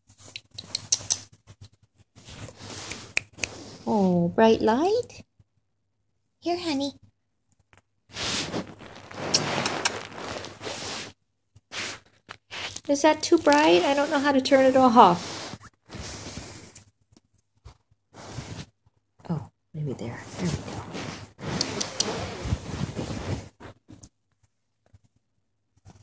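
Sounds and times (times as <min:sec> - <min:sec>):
sharp clicks: 0:00.3 - 0:01.3
rustling handling noise: 0:08.1 - 0:16.9.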